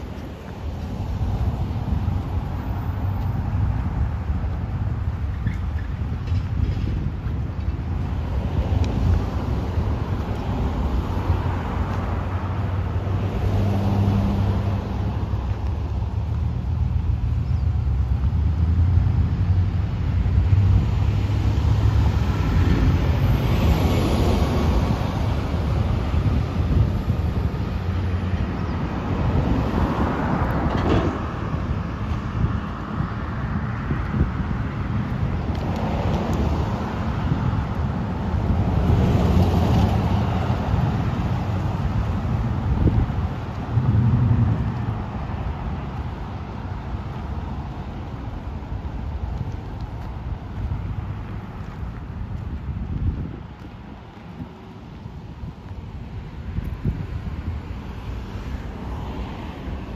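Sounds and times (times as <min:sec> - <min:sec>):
cars passing: 0:00.0 - 0:59.9
low traffic rumble: 0:00.0 - 0:59.9.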